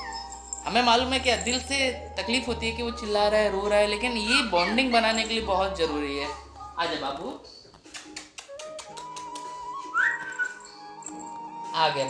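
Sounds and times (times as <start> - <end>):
puppy whining: 0.0 - 2.2, 3.0 - 6.8, 7.8 - 11.8
background music: 0.0 - 12.0.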